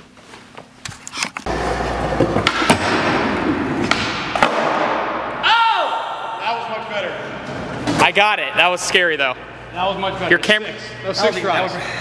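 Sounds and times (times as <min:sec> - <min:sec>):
skateboard wheels rolling on concrete: 0:01.4 - 0:03.8
man shouting: 0:05.4 - 0:06.7.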